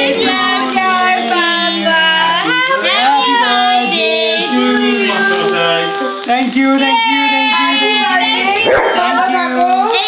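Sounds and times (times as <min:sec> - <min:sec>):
people's voices: 0:00.0 - 0:10.0.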